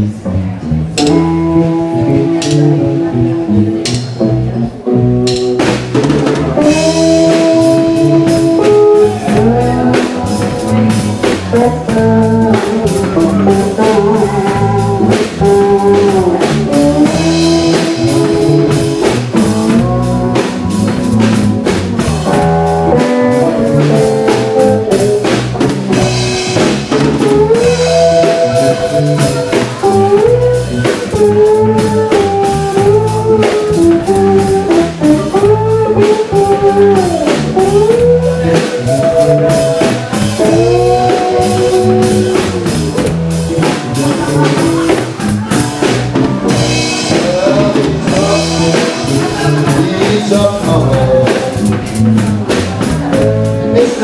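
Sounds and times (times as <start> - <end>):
electric guitar lead lines: 0.0 - 54.0
upright bass: 0.0 - 54.0
drum kit beat: 0.7 - 54.0.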